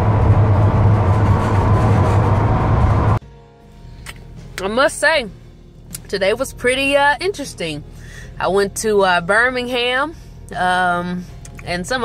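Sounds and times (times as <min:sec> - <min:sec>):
road and wind rumble in vehicle: 0:00.0 - 0:03.2.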